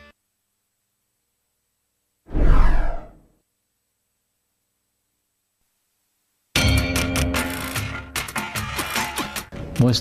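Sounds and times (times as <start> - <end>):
whoosh with low rumble: 2.3 - 3.2.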